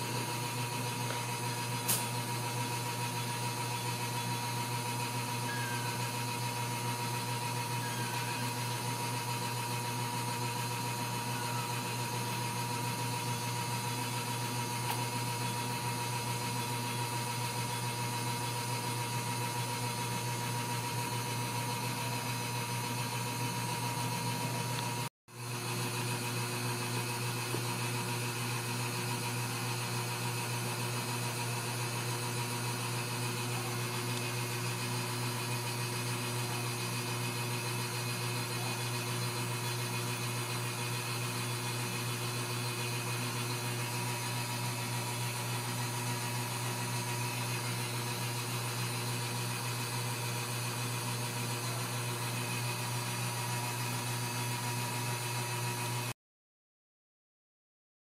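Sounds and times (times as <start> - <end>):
low mechanical hum: 0.0 - 56.1.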